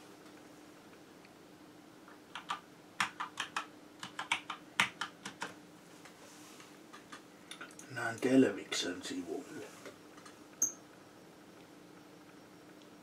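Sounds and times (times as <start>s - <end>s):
computer keyboard typing: 2.3s - 5.6s.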